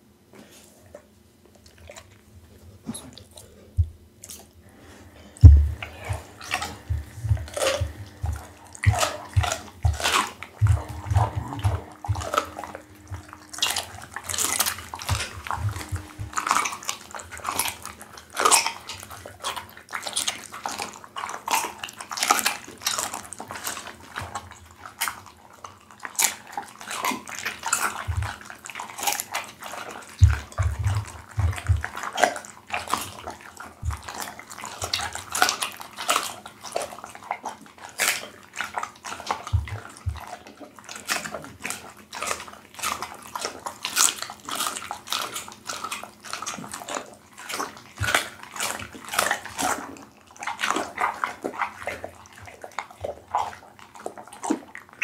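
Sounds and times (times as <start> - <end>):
dog chewing wet smacking: 0.4 - 55.0
bone crunching: 5.3 - 21.6
deep thumps: 5.4 - 13.8, 14.4 - 16.6.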